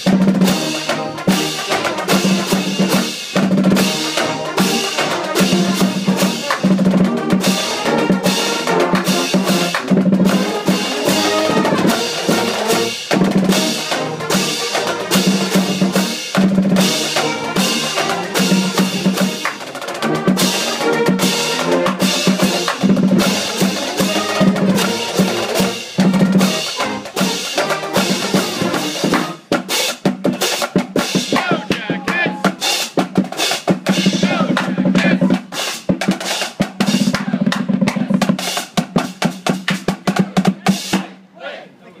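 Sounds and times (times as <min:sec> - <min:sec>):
drum strokes: 0:00.0 - 0:41.2
brass marching band playing: 0:00.0 - 0:41.6.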